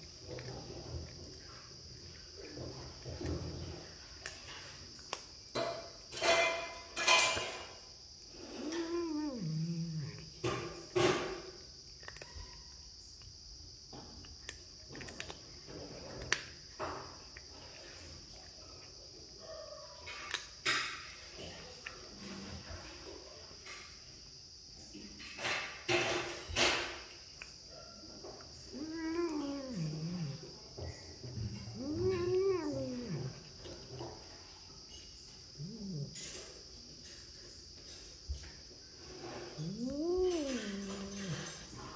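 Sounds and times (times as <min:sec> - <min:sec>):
kitten crunching on bone: 0:00.0 - 0:05.7, 0:11.7 - 0:12.6, 0:14.2 - 0:17.6
kitten meowing: 0:08.5 - 0:10.1, 0:28.8 - 0:30.4, 0:31.8 - 0:33.4, 0:39.6 - 0:41.3.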